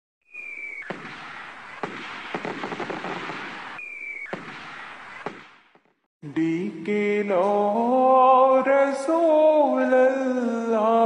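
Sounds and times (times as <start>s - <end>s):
firework rocket whistle: 0.2s - 5.7s
firework bangs: 0.3s - 6.1s
firework crackling: 0.4s - 6.0s.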